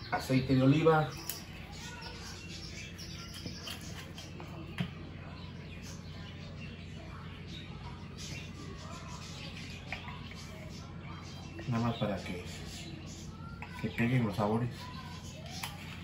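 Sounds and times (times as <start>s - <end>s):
faint bird chirps: 0.0s - 16.0s.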